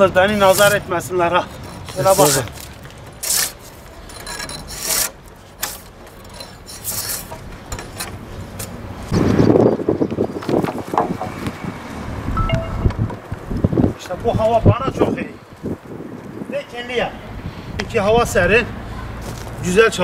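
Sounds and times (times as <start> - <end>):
blade scraping bark off log: 0.3 - 0.8, 1.6 - 7.5
wooden pole knocking and rubbing: 10.1 - 11.6.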